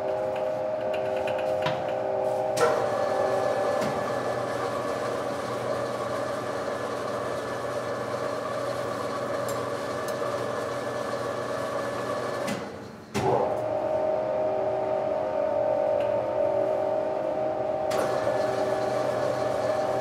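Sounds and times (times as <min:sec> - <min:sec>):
steady hum with strong tone: 0:00.0 - 0:05.8, 0:13.1 - 0:20.0
laundry machines humming: 0:00.0 - 0:20.0.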